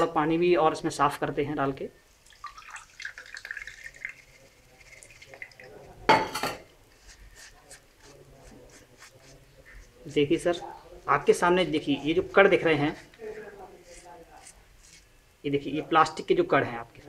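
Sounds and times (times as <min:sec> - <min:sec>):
faint water drips: 0:02.1 - 0:06.0
water pouring into strainer: 0:02.2 - 0:06.0.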